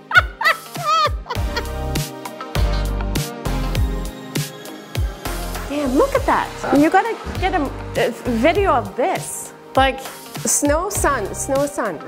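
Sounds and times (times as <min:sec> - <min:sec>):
woman cackling laughter: 0:00.0 - 0:02.9
background music: 0:00.0 - 0:12.0.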